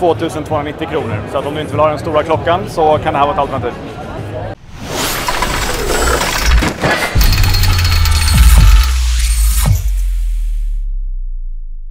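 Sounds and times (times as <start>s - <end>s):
falling swoops: 4.6s - 7.1s.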